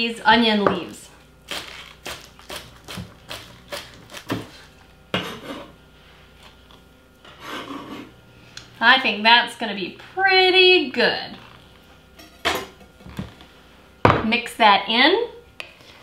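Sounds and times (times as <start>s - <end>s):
knife scraping cutting board: 3.4s - 5.8s, 7.2s - 8.2s.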